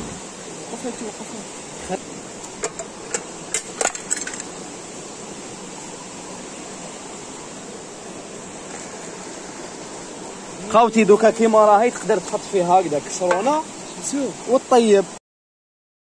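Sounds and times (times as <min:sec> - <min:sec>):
river water rushing: 0:00.0 - 0:15.2.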